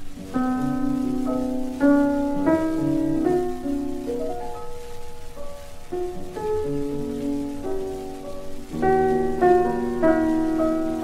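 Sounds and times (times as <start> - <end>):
record surface hiss: 0.0 - 11.0
slow solo piano melody: 0.0 - 11.0.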